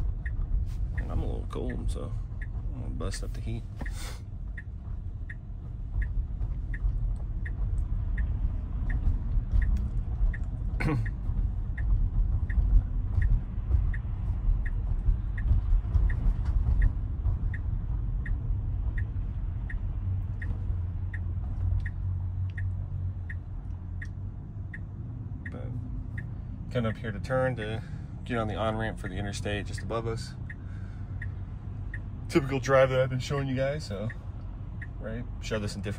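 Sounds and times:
road rumble in car cabin: 0.0s - 35.9s
turn signal ticking: 0.0s - 35.9s.

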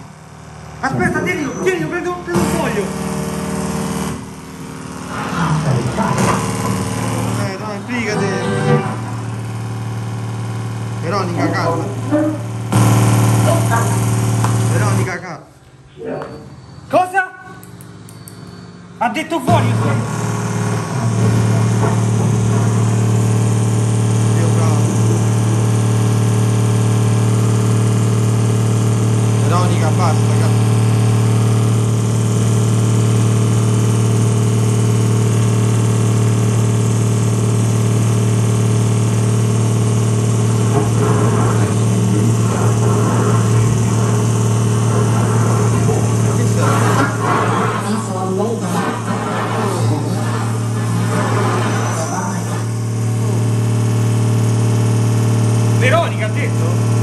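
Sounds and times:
loud low hum: 0.0s - 57.0s.

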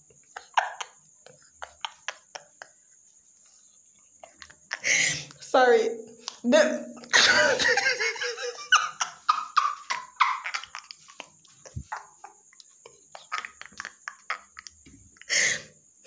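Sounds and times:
person laughing: 0.3s - 2.8s, 6.6s - 14.8s
breaths: 4.8s - 5.4s, 15.2s - 15.8s.

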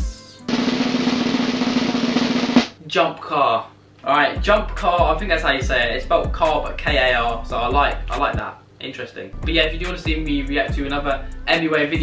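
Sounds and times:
snare drum roll: 0.5s - 2.8s.

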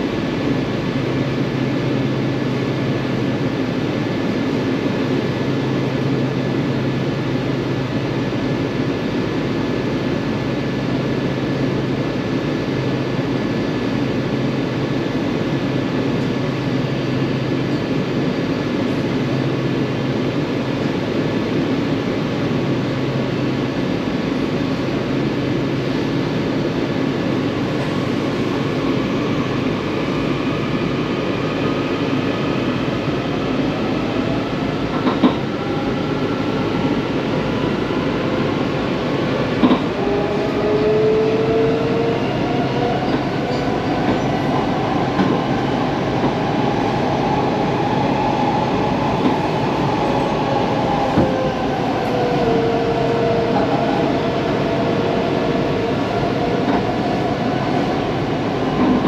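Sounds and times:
wheels rumbling on rail: 0.0s - 59.0s.

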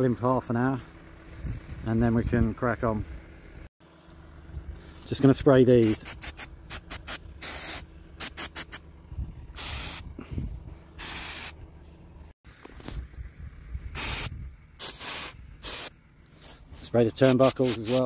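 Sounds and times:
aerosol can spraying: 5.8s - 8.8s, 9.6s - 10.0s, 11.0s - 11.6s, 14.0s - 16.6s, 17.2s - 18.0s.

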